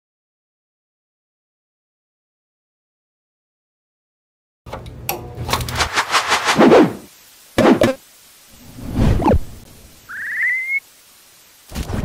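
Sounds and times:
whoosh: 5.8 - 7.1.

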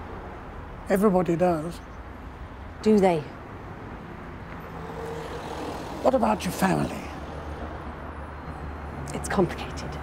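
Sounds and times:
street traffic rumble: 0.0 - 10.0.

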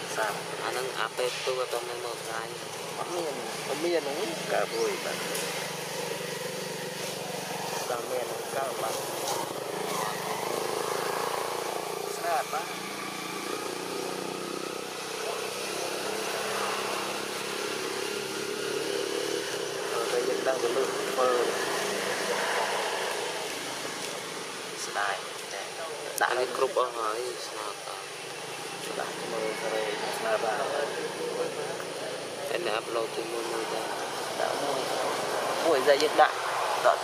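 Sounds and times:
people talking: 0.0 - 5.3, 7.8 - 10.2, 12.0 - 12.7, 15.2 - 17.1, 19.8 - 22.9, 24.8 - 28.1, 28.8 - 37.0
steady background noise: 0.0 - 37.0.

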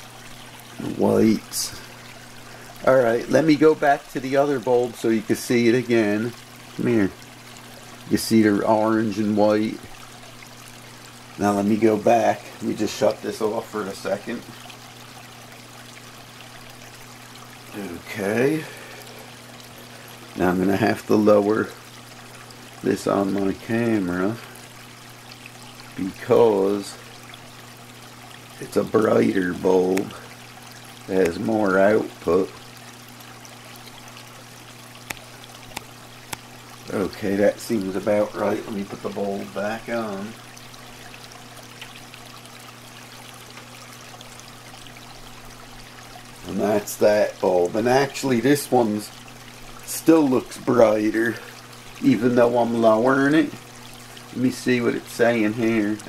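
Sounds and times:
aquarium water trickling: 0.0 - 56.0
low steady hum: 0.0 - 56.0.

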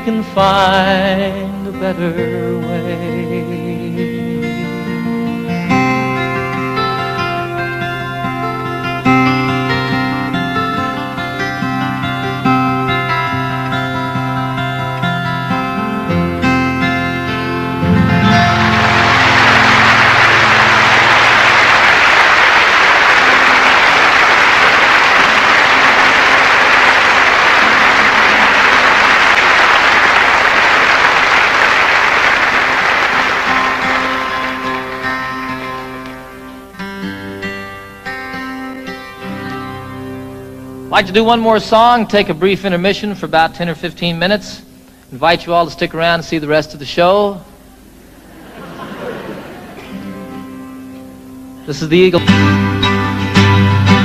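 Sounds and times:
acoustic guitar playing: 0.0 - 54.0
audience applauding: 17.8 - 36.8, 48.0 - 50.3.

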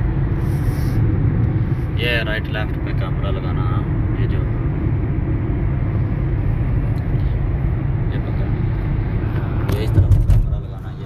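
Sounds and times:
car road and engine rumble: 0.0 - 11.0
sharp knocks: 9.7 - 10.6.

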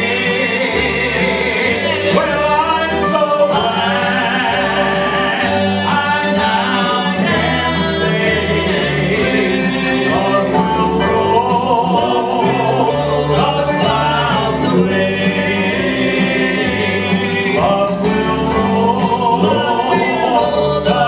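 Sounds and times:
instrumental accompaniment with bass: 0.0 - 21.0
male trio singing in harmony: 0.0 - 21.0.

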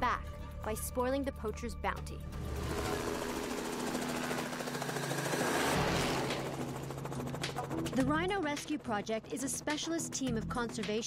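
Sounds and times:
helicopter rotor chopping: 2.3 - 11.0.

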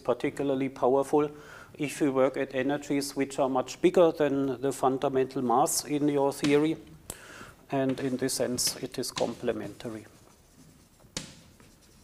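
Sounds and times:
chalk tap: 7.9 - 12.0
chalk scratching on blackboard: 8.0 - 12.0.

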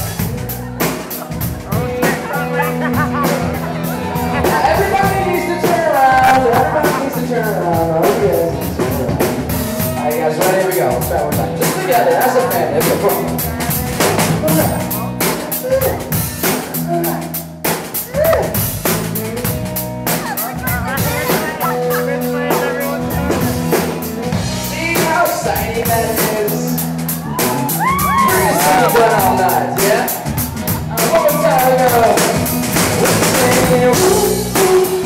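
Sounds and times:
voices singing: 0.0 - 10.8, 20.1 - 35.0
acoustic and electric guitars: 0.0 - 35.0
drum kit beat: 0.0 - 35.0.

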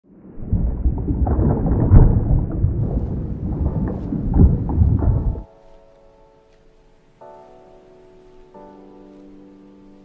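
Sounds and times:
deep rolling rumble with crackle: 0.1 - 5.5.

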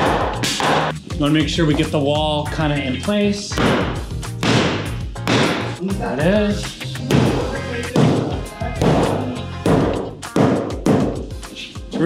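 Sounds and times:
hammer striking wood: 0.0 - 0.9, 3.5 - 5.8, 8.0 - 11.2
background music: 0.0 - 12.0.

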